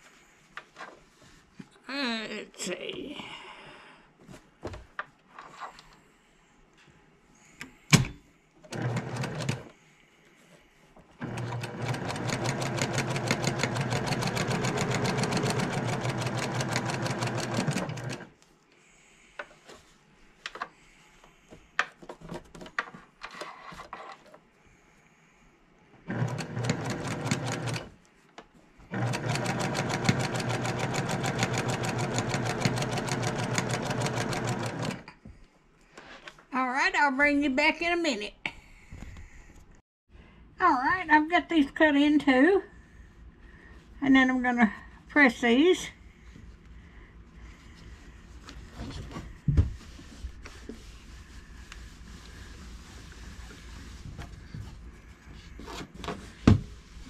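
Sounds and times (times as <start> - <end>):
sewing machine stitching: 8.6 - 9.7, 11.2 - 18.3, 26.1 - 28.0, 28.9 - 35.1.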